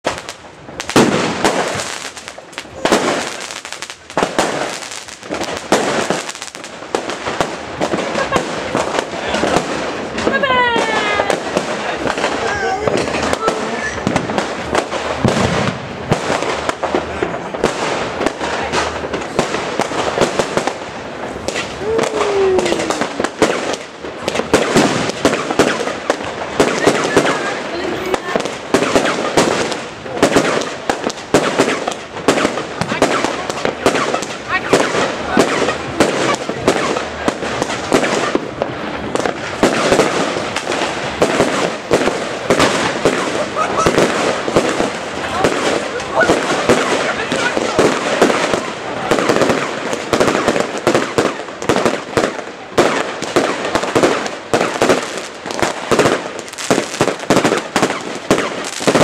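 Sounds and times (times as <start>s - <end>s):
fireworks and firecrackers banging: 0.0s - 59.0s.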